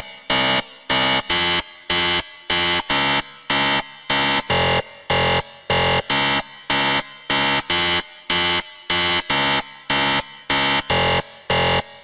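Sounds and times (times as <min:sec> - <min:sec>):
harsh electronic buzzer blasts: 0:00.3 - 0:11.9.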